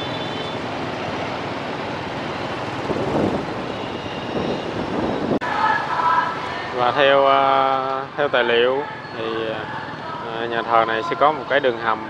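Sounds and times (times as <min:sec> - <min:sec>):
motorbike traffic: 0:00.0 - 0:12.0
vehicles passing close: 0:00.0 - 0:12.0.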